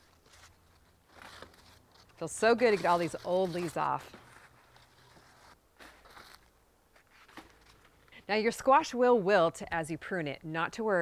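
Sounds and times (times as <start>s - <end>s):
leaves rustling: 0.0s - 8.2s.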